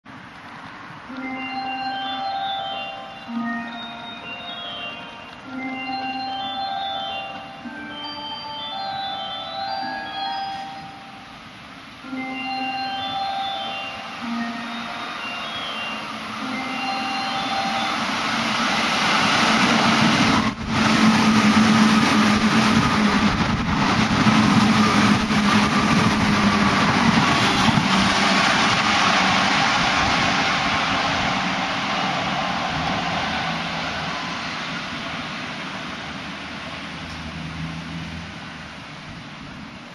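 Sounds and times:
electric train passing at speed: 0.1 - 39.9.

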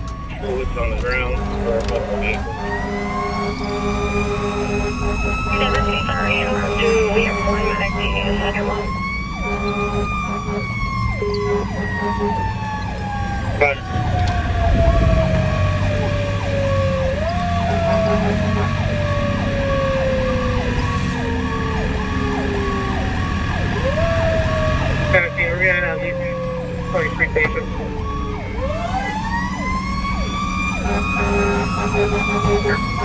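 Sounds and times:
mechanical siren wailing: 0.0 - 33.0
truck engine drone: 0.0 - 33.0.

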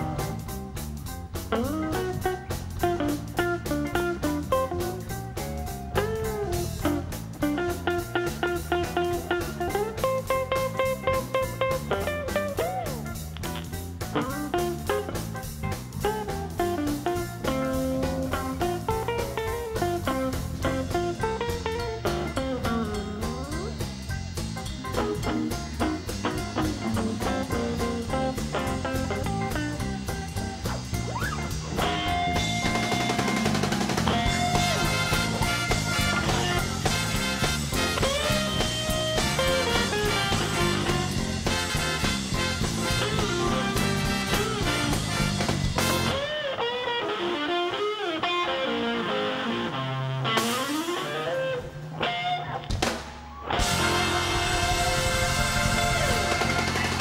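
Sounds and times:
blues band playing live: 0.0 - 57.0
electric guitar with bent notes: 0.0 - 57.0.

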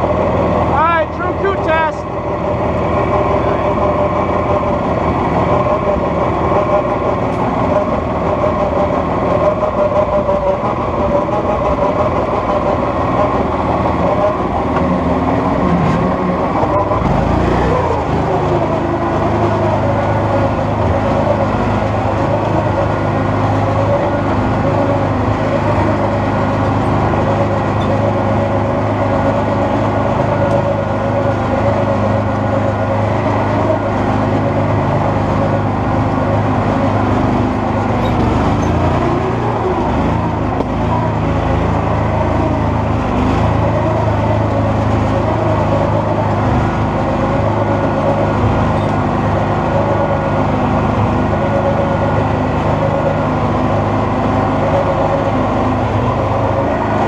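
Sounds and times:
atv engine running: 0.0 - 57.0.

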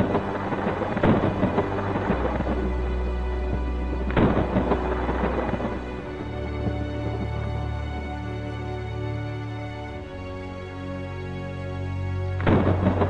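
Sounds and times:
thunderclaps: 0.0 - 9.0, 12.4 - 13.0
falling rain: 0.0 - 13.0
slow background music: 0.0 - 13.0.

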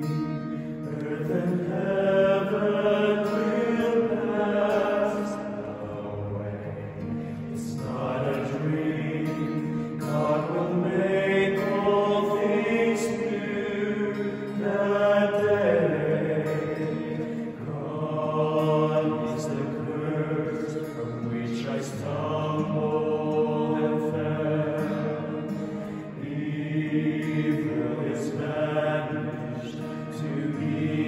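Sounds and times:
acoustic guitar: 0.0 - 31.0
male ensemble singing in harmony: 0.0 - 31.0.

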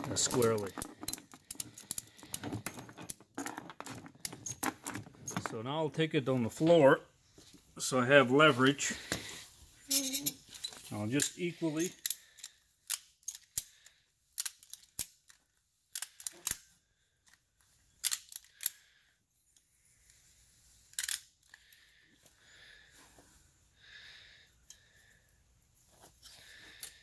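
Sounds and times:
strap rubbing and scraping: 0.0 - 5.7.

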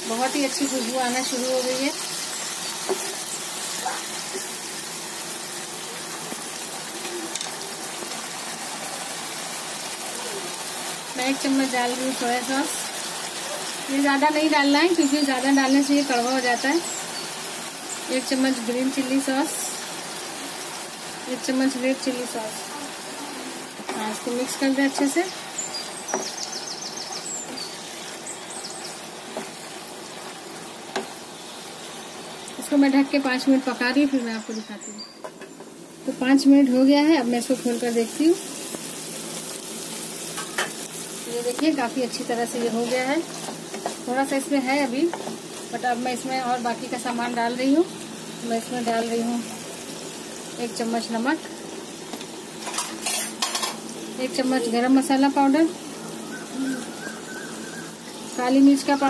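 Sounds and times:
chicken frying in hot oil: 0.0 - 59.0.

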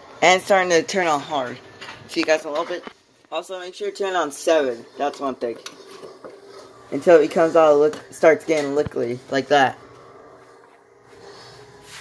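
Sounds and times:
utensil scraping a saucepan: 4.0 - 8.8.

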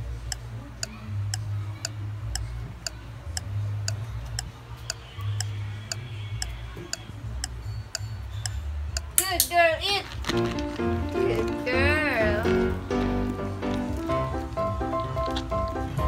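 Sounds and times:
clock ticking: 0.0 - 9.3.

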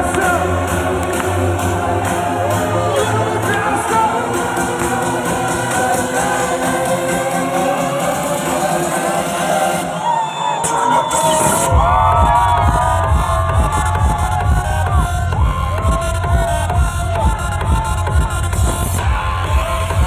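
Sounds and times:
heavy bass beat: 0.0 - 9.9, 10.7 - 20.0
crowd cheering and whooping: 0.0 - 20.0
loud electronic dance music: 0.0 - 20.0.

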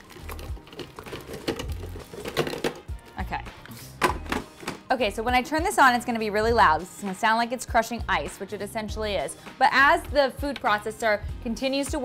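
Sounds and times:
frozen fruit clunking into plastic bowl: 0.0 - 2.9
background music with low beat: 0.0 - 12.0.

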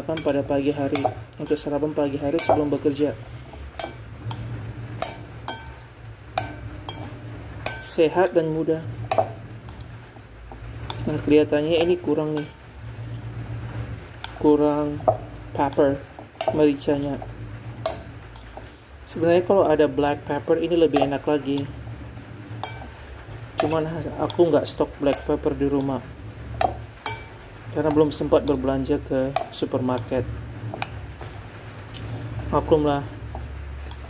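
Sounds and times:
utensil clinking against glass bowl: 0.0 - 5.8, 6.4 - 8.4, 9.1 - 10.0, 14.2 - 18.6, 20.9 - 21.8, 22.5 - 23.0, 26.6 - 28.6, 29.3 - 30.1
low steady hum: 0.0 - 34.0.

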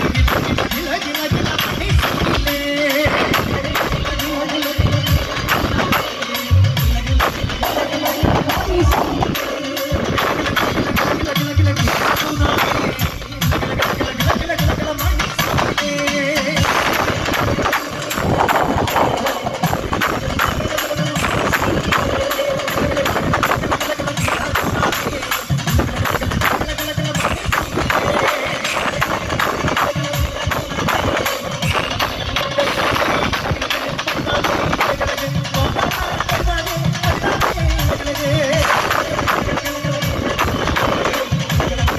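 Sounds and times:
dense steady drumming: 0.0 - 41.9
person singing: 0.0 - 41.9.

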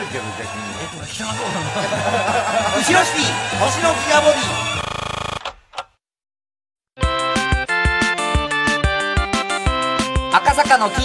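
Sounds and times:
music: 0.0 - 4.8, 7.0 - 11.0
rattling buzz: 4.1 - 5.4.

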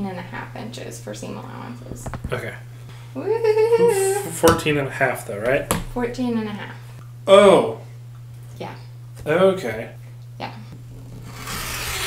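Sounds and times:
rotary cutter cutting fabric: 11.0 - 12.0.

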